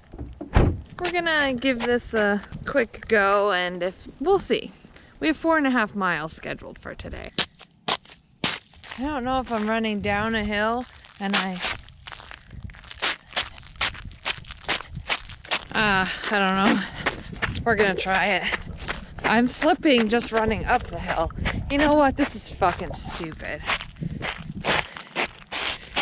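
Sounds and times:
running footsteps on icy asphalt: 0:07.4 - 0:26.0.

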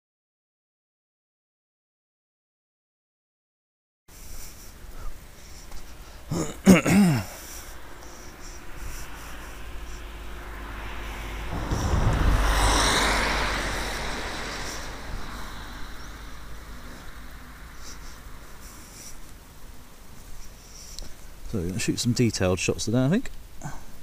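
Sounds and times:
vehicle driving past: 0:07.6 - 0:19.5.

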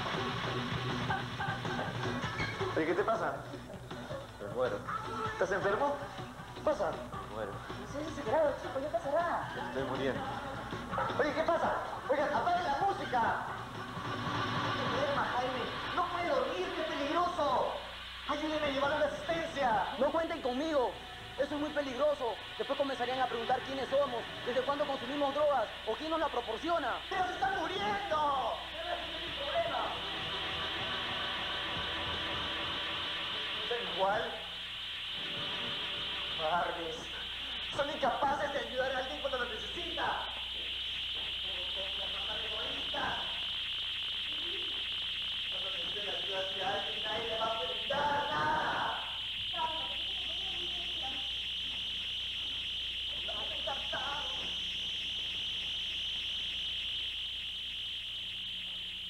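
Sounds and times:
high-pitched chirring drone: 0:00.0 - 0:59.0
low electrical hum: 0:00.0 - 0:59.0
steady tape hiss: 0:00.0 - 0:59.0.

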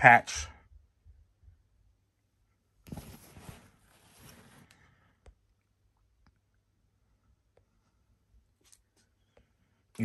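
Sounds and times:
soft rustling handling noise: 0:02.7 - 0:05.4.

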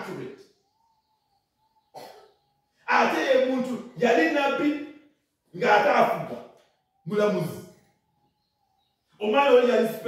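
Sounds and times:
person coughing: 0:01.9 - 0:02.4.

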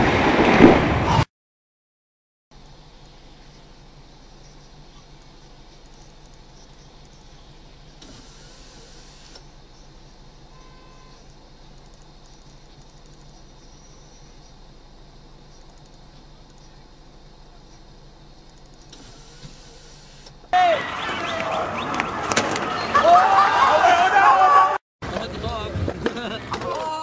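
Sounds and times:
car engine idling: 0:02.5 - 0:21.3
hiss: 0:08.0 - 0:09.4, 0:18.8 - 0:20.3
faint short tone: 0:09.4 - 0:11.4.

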